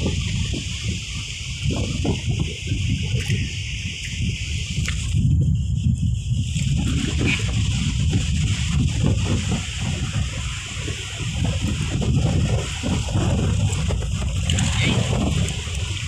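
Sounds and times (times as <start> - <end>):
constant low rumble: 0.0 - 16.0
water sloshing and splashing: 6.5 - 16.0.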